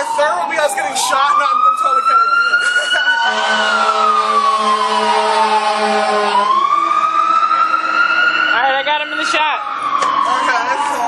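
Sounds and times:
voices: 0.0 - 3.9
emergency vehicle siren wailing: 0.0 - 11.0.

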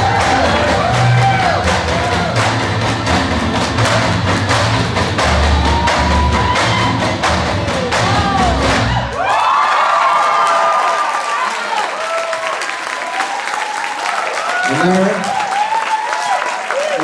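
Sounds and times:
audience shouts and whoops: 0.0 - 2.6, 5.2 - 17.0
cheering and applause: 0.0 - 17.0.

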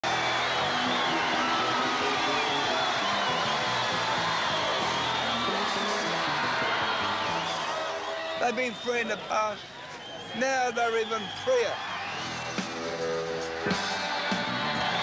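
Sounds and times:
live rock band playing: 12.1 - 15.0.

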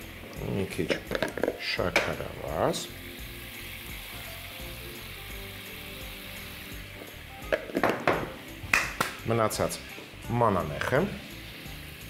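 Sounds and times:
food sizzling in a pan: 0.0 - 12.0
soft music: 0.0 - 12.0.

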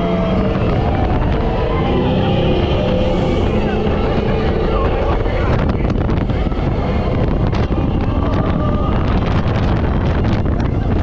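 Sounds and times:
ride car rumbling: 0.0 - 11.0
wind on microphone: 0.0 - 11.0.

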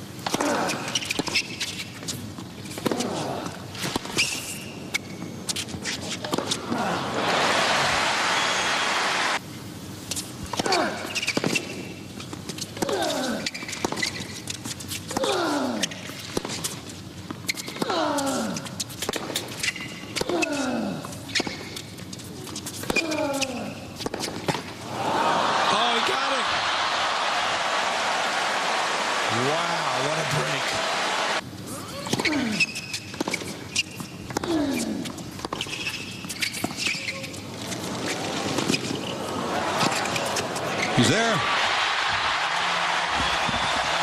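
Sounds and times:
shoe squeaks: 0.7 - 2.2, 4.1 - 6.3, 10.8 - 12.4, 13.4 - 15.0, 15.8 - 17.8, 18.7 - 20.2, 21.3 - 24.4, 31.9 - 41.2
crowd applause: 6.9 - 9.4, 24.9 - 31.4, 39.3 - 44.0.

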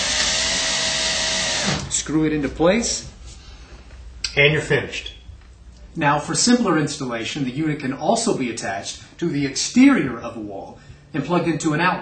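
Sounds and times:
cordless drill driving screw: 0.0 - 1.9.

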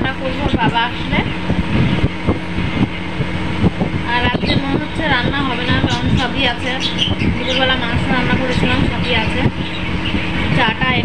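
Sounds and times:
woman talking: 0.0 - 1.6, 4.0 - 9.7, 10.4 - 11.0
steady low hum: 0.0 - 11.0.

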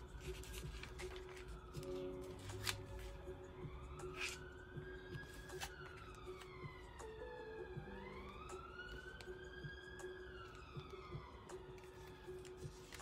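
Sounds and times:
faint wailing siren: 0.0 - 12.9.

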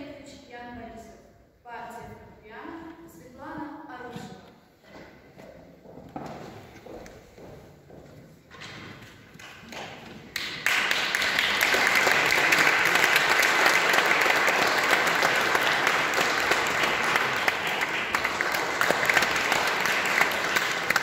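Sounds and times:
audience applauding: 9.4 - 21.0.

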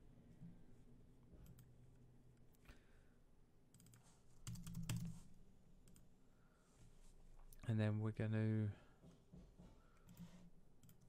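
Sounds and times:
keyboard keystrokes and clicks: 3.7 - 5.2.

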